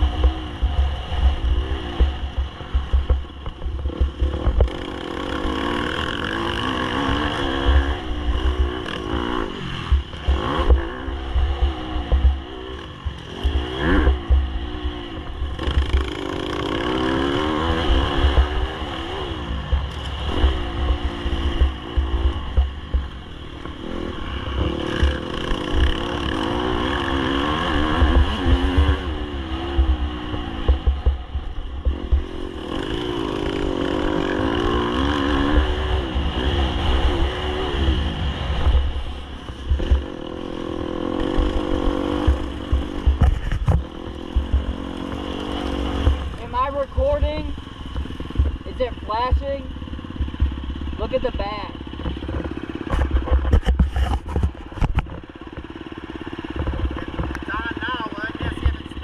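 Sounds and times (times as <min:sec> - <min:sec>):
dirt bike engine revving: 0:00.0 - 0:59.0
wind rumble on microphone: 0:07.0 - 0:57.5.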